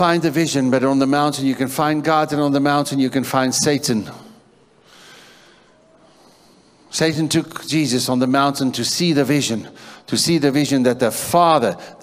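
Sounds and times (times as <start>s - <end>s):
man breathing in: 4.8s - 6.9s, 9.8s - 10.1s.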